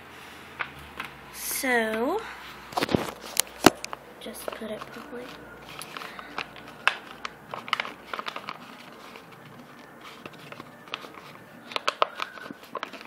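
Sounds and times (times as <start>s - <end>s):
paper crinkling and rustling: 2.6s - 13.0s.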